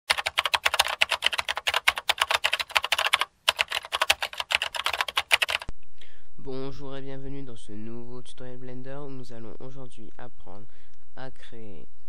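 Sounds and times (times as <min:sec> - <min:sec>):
rapid keyboard typing: 0:00.0 - 0:05.7.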